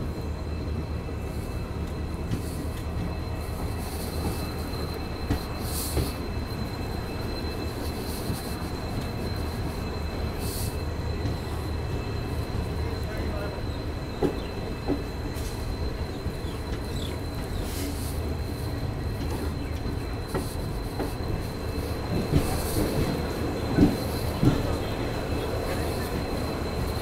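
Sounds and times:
train wheels rumbling on rails: 0.0 - 27.0.

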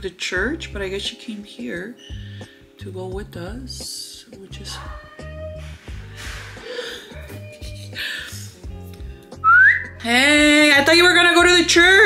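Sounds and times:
quiet background music: 0.0 - 12.0
rising whistle: 9.4 - 9.9.

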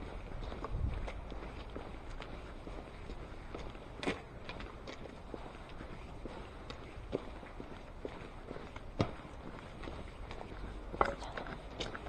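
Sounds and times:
faint street ambience: 0.0 - 12.0
footsteps on pavement: 0.0 - 12.0.

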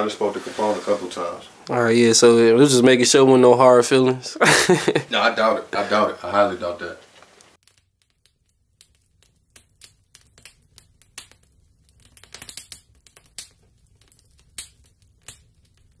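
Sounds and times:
fire crackling: 0.0 - 16.0.

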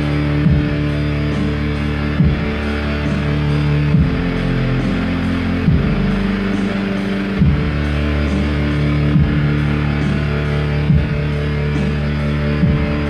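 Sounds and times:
electronic keyboard chords: 0.0 - 13.0.

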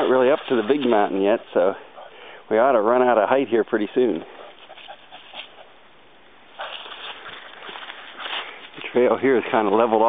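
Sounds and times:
dry leaves rustling and crunching: 0.0 - 1.4, 6.5 - 10.0.

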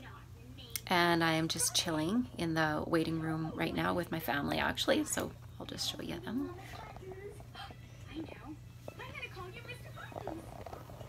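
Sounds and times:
faint voices: 0.0 - 11.0
low steady hum: 0.0 - 11.0.

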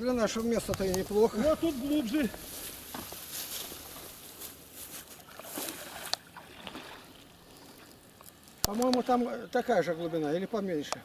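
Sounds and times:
water sloshing and lapping: 5.0 - 9.2.

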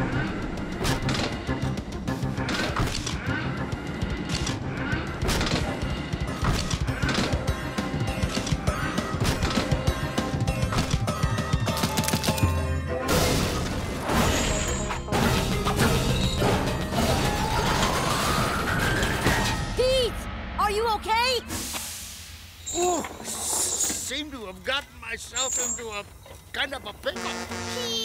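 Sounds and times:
background music: 0.0 - 21.4.

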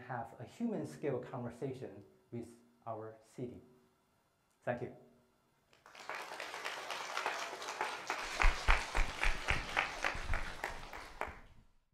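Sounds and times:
audience applauding: 5.8 - 11.6
sharp claps: 5.8 - 11.6.

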